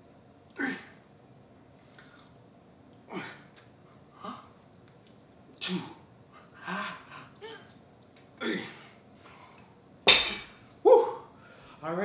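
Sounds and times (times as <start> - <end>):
barbell clanking on floor: 10.1 - 10.6.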